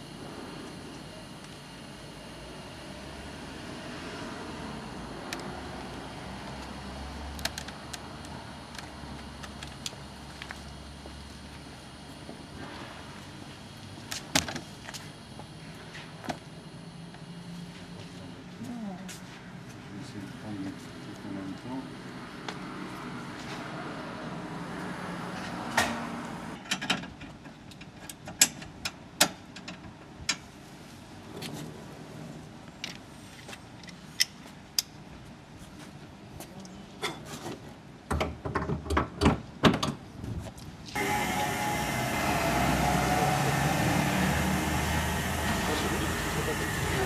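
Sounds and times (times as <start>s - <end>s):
steady loud air noise: 0.0s - 18.5s, 40.1s - 47.0s.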